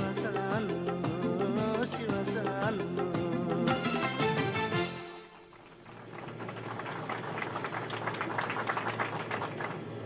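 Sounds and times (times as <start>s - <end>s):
people clapping: 5.3s - 10.0s.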